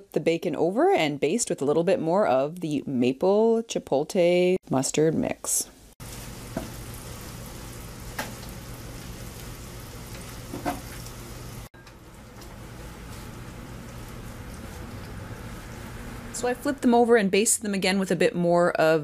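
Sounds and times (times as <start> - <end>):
bacon sizzling: 5.4 - 16.5.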